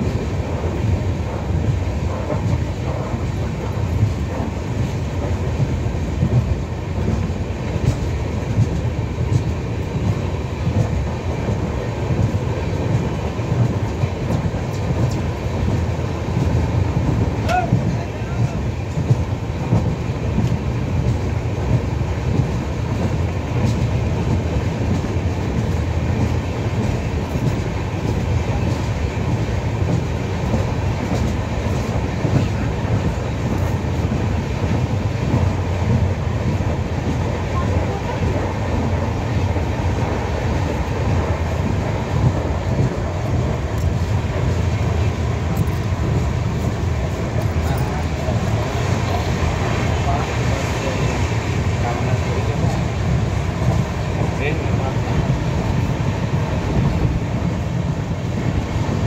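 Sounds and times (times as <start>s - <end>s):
train wheels rumbling: 0.0s - 59.0s.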